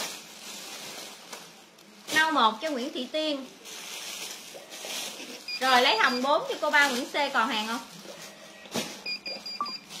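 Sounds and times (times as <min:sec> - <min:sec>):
sharp plastic crackle: 0:00.0 - 0:10.0
high-pitched electronic beeps: 0:09.1 - 0:09.9.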